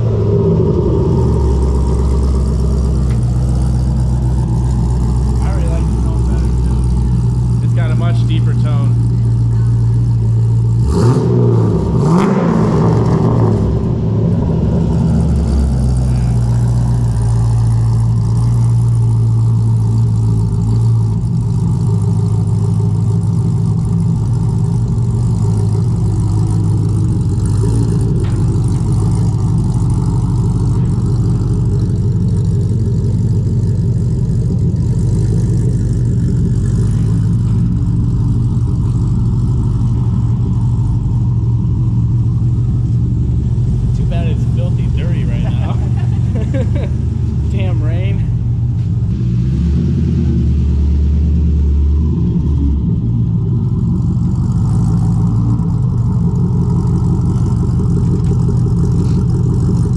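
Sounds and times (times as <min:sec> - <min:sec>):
car engine revving and idling: 0:00.0 - 0:59.9.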